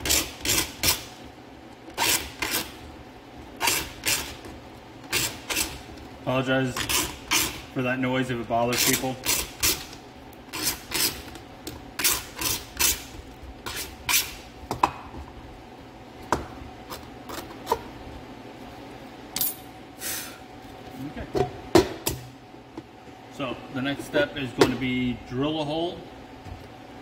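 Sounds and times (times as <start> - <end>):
hand tool scraping plastic: 6.7 - 7.6.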